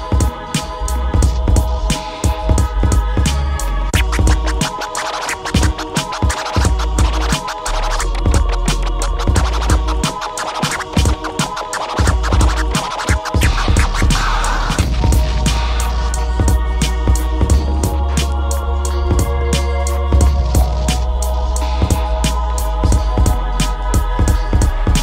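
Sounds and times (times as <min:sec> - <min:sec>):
backing beat: 0:00.0 - 0:25.0
turntable scratching: 0:00.0 - 0:25.0.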